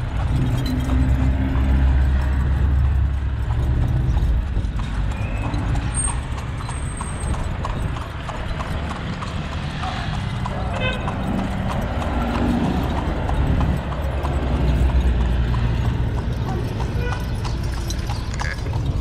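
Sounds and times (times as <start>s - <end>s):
horse hooves clip-clopping on asphalt: 0.0s - 19.0s.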